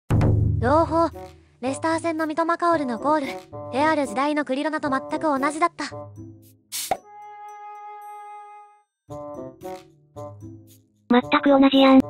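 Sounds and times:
quick pop with falling pitch: 6.8 - 7.0.

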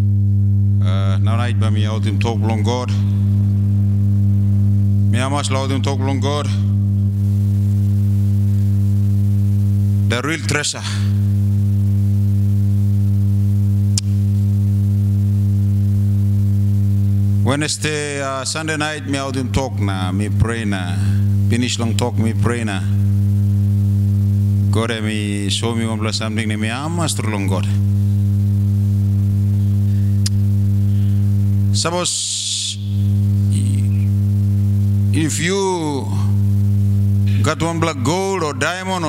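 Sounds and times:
low electrical hum: 0.0 - 39.0
sharp click: 13.9 - 14.2, 30.2 - 30.4.

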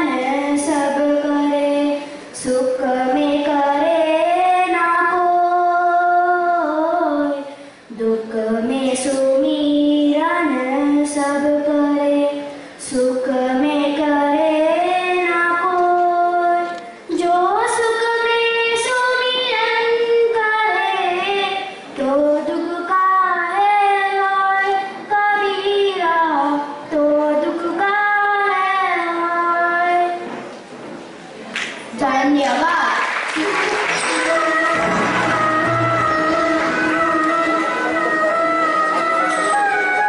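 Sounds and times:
child singing into a microphone: 0.0 - 30.3, 31.9 - 40.0.

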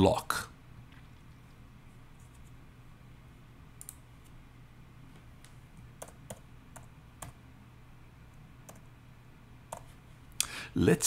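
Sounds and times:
keyboard keystrokes and clicks: 3.8 - 4.0, 5.4 - 7.4, 8.6 - 8.9, 9.7 - 9.9.

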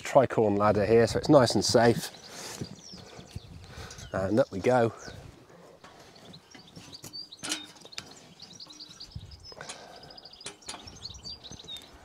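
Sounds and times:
birds chirping and singing: 0.2 - 12.0.

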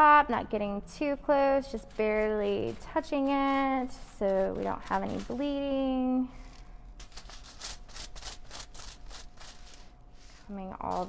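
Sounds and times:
brush rasping over hair and foil: 1.0 - 11.0.

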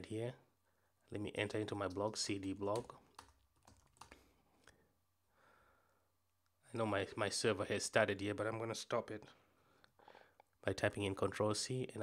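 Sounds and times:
faint keyboard keystrokes: 2.6 - 4.2.

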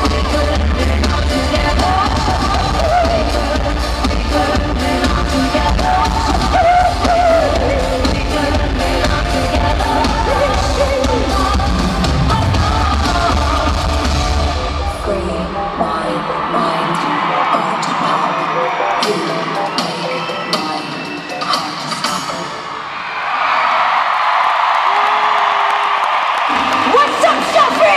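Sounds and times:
live pop music with bass beat: 0.0 - 22.8
crowd cheering and whooping: 9.8 - 21.6, 22.6 - 27.9
voices: 26.8 - 27.9.

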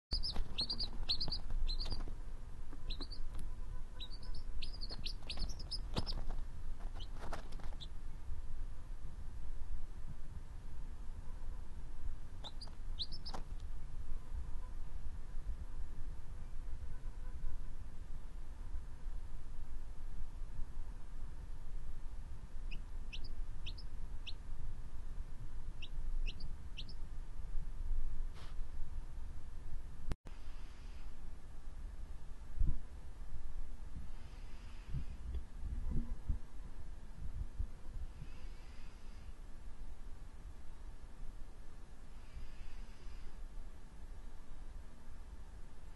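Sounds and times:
quail chick peeping: 0.1 - 8.0, 12.4 - 14.8, 22.6 - 24.5, 25.8 - 27.0.

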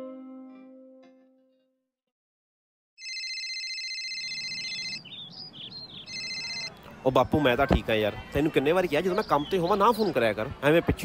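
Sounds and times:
telephone ringtone trilling: 3.0 - 5.0, 6.1 - 6.7
birds chirping: 4.2 - 10.6.

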